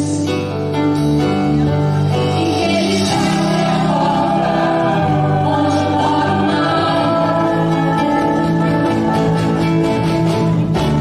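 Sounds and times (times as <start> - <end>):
acoustic guitars: 0.0 - 11.0
voices singing together: 2.3 - 10.2.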